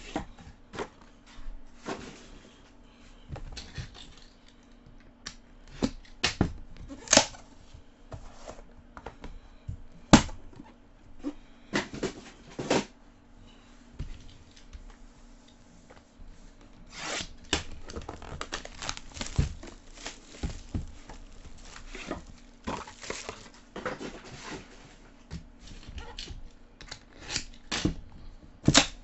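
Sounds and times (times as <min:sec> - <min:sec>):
plastic wrapping tearing: 0:17.0 - 0:23.6.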